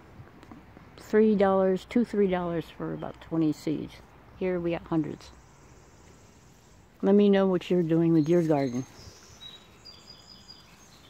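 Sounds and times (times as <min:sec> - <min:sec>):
outdoor background noise: 0:00.0 - 0:11.0
faint birdsong: 0:01.9 - 0:11.0.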